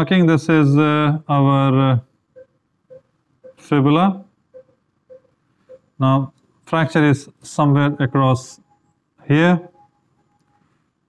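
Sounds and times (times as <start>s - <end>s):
man saying uh: 0.0s - 2.0s, 6.0s - 8.6s
faint low beeps: 2.3s - 10.7s.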